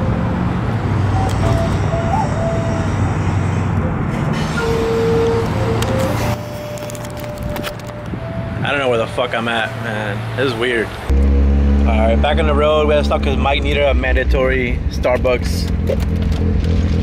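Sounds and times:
wooden end-blown flute: 1.2 - 3.0, 4.6 - 8.7
low rumble: 11.1 - 17.0.

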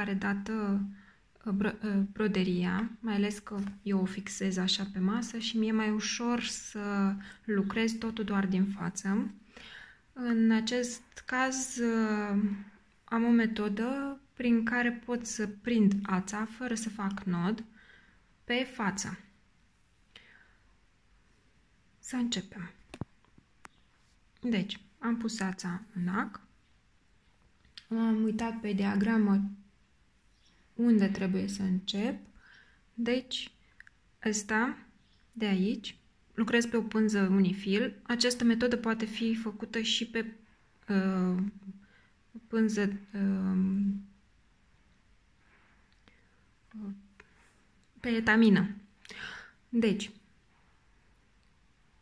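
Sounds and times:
faint breathing: 9.4 - 10.2, 17.7 - 18.4, 20.1 - 20.9, 32.4 - 33.0, 49.0 - 49.7.

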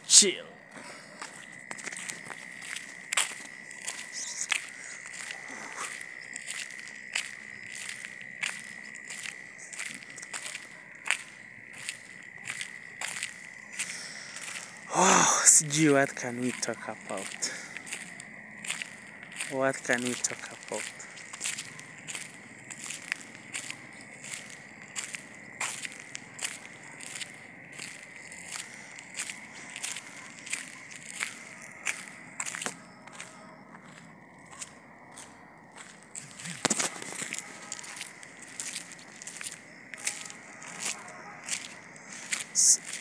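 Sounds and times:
footsteps walking: 0.7 - 14.9, 15.6 - 43.0
person humming: 14.9 - 15.5.

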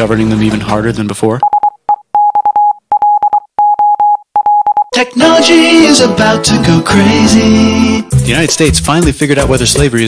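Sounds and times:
morse code beeps: 1.4 - 5.0.

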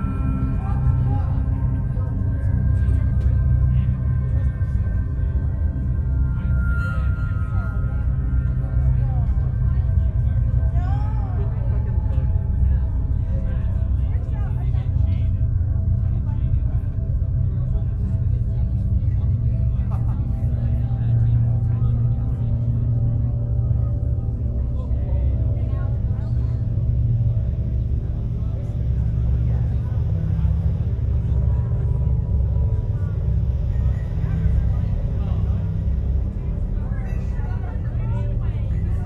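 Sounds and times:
low hum: 0.0 - 39.0.

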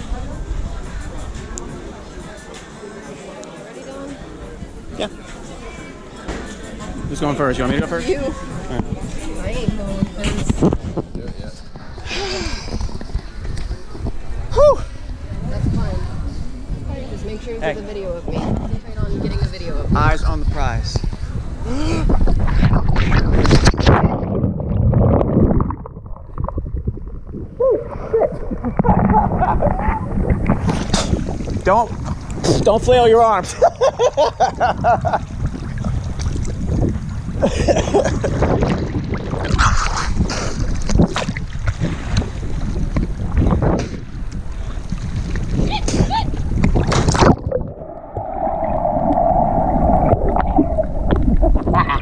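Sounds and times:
wind buffeting microphone: 6.9 - 52.0
muffled underwater churning: 22.2 - 32.8, 34.5 - 52.0
water slapping and splashing: 22.4 - 33.2, 33.8 - 52.0
people laughing: 28.0 - 30.1, 33.4 - 35.3, 37.4 - 38.5, 51.5 - 52.0
splash into water: 46.6 - 49.3.

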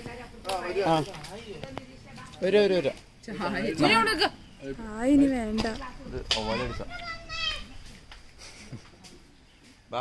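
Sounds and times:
children talking and calling out: 3.3 - 8.5.

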